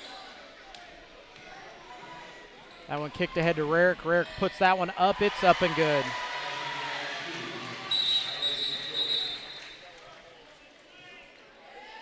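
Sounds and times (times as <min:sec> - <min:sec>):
crowd noise: 0:00.0 - 0:12.0
referee's whistle: 0:07.8 - 0:09.8.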